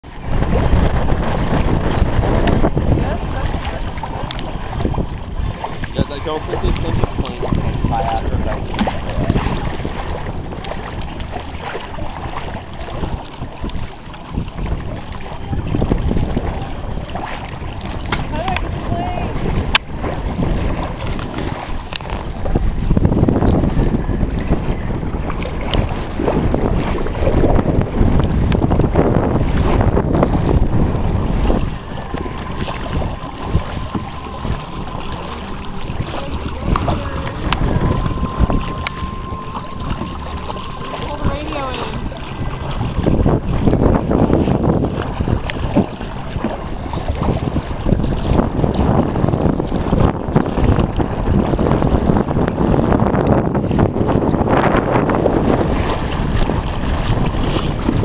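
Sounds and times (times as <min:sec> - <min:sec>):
water lapping around boats: 0:00.0 - 0:58.0
wind buffeting microphone: 0:00.0 - 0:58.0.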